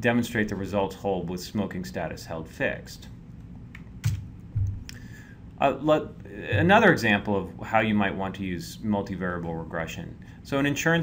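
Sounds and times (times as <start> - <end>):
low thump: 4.1 - 4.8.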